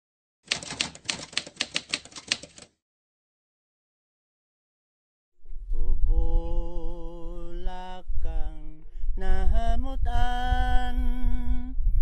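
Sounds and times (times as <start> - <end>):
typewriter key clacks: 0.5 - 2.8.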